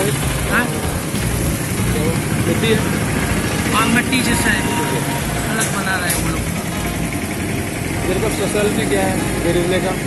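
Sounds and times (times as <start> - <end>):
vehicle engine idling: 0.0 - 10.0.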